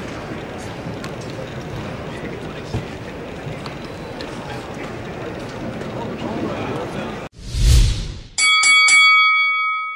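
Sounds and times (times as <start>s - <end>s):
whoosh with low boom: 7.3s - 8.4s
boxing bell ringing: 8.4s - 9.9s.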